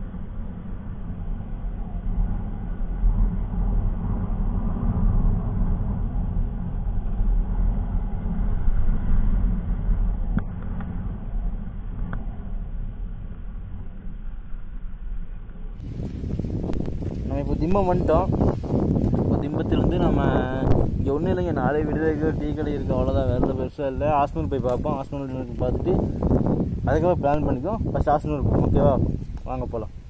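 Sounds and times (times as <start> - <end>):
muffled motorcycle engine rumble: 0.0 - 30.0.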